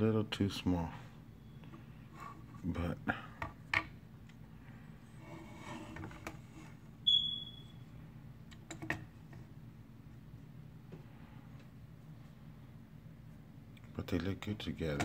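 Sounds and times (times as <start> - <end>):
steady low hum: 0.0 - 15.0
short high-pitched squeak: 7.1 - 7.8.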